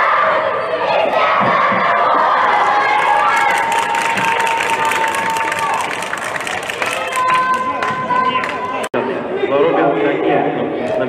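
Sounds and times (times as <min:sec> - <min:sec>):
children cheering and shouting: 0:00.0 - 0:08.8.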